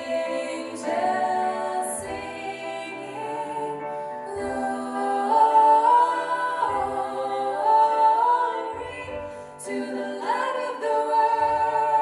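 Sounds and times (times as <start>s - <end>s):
female vocal quartet singing a cappella: 0.0s - 12.0s.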